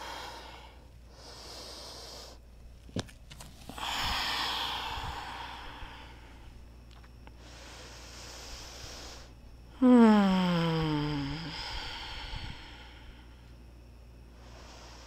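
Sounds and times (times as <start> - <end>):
person breathing: 0.0 - 2.4, 3.6 - 6.7, 7.3 - 13.6, 14.2 - 15.0.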